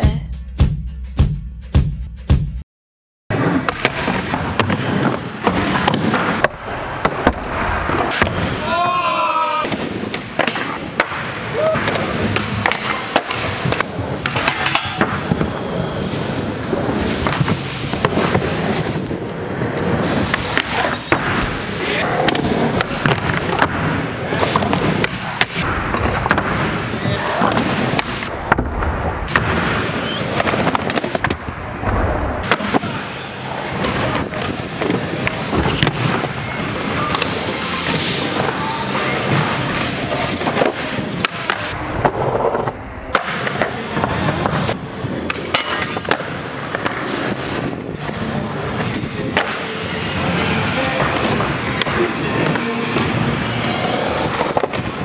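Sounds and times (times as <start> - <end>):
skateboard wheels rolling on concrete: 3.3 - 55.0.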